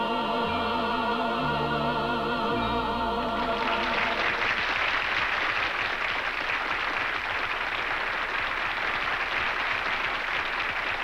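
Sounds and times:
audience applauding: 3.4 - 11.0.

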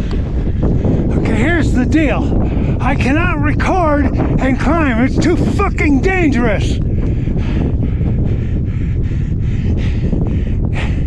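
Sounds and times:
wind buffeting microphone: 0.0 - 11.0.

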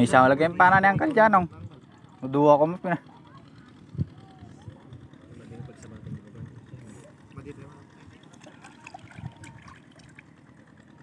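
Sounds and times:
water lapping and trickling: 3.0 - 11.0.

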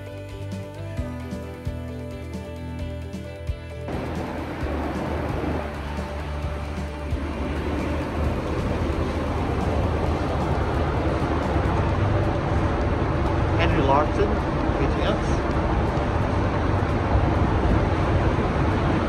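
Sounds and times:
background music: 0.0 - 19.0
ship engines rumbling: 3.9 - 19.0.

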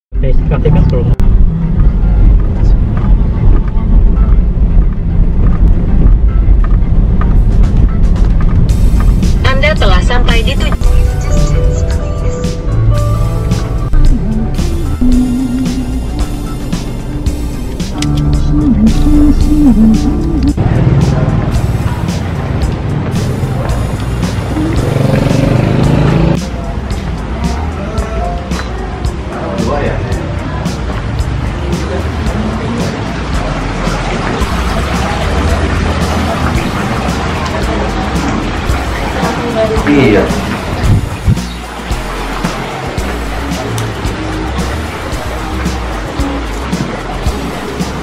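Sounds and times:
music: 0.1 - 48.0
voice: 0.2 - 1.2, 9.4 - 11.7, 18.0 - 21.2, 29.3 - 30.8, 34.4 - 41.4
car interior rumble: 0.2 - 26.6.

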